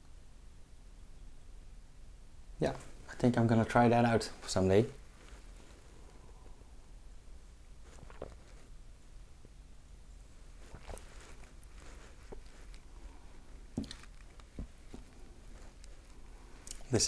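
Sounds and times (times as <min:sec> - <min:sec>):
low room hum: 0:00.0 - 0:17.0
man sipping and swallowing: 0:07.8 - 0:08.7, 0:10.6 - 0:16.9
soft mouth smacks and clicks: 0:07.9 - 0:08.6, 0:15.8 - 0:16.9.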